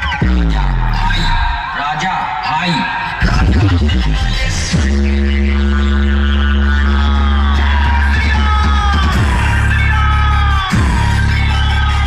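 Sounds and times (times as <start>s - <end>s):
electronic dance music: 0.0s - 12.0s
heavy bass drone: 0.0s - 12.0s.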